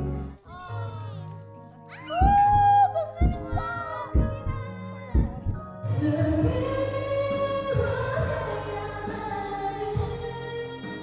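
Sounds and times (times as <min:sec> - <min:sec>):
karaoke backing track: 0:00.0 - 0:11.0
woman singing into microphone: 0:02.2 - 0:11.0.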